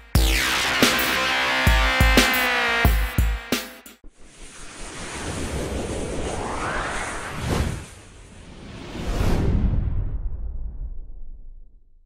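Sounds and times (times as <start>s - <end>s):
rising whoosh effect: 4.0s - 11.6s.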